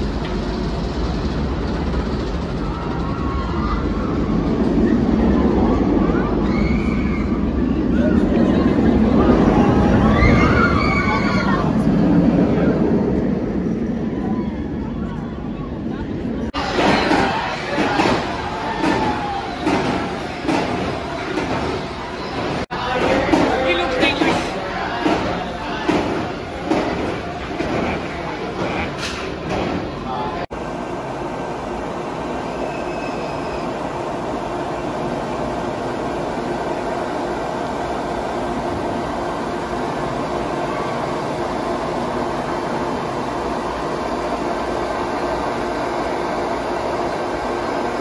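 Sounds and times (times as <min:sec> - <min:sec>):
roller coaster rumbling on track: 0:00.0 - 0:48.0
wheels clacking on rail: 0:16.6 - 0:30.2.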